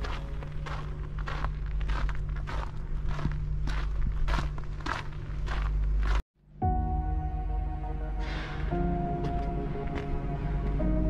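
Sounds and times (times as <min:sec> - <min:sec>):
footsteps on gravel: 0:00.0 - 0:06.2
steady low rumble: 0:00.0 - 0:11.0.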